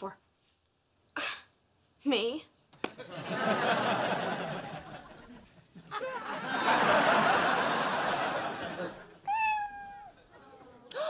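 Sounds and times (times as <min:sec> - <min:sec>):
cat meowing: 0:09.3 - 0:10.2.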